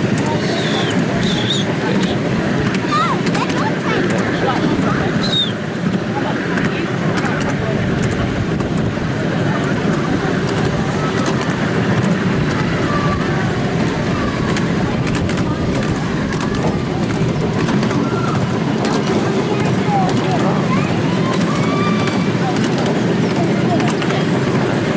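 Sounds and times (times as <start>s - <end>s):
small train wheels rumbling on track: 0.0s - 24.9s.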